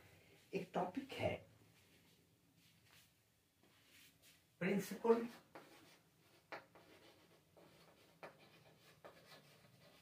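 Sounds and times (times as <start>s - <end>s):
chalk scratching on blackboard: 5.2s - 10.0s
chalk taps: 5.2s - 10.0s.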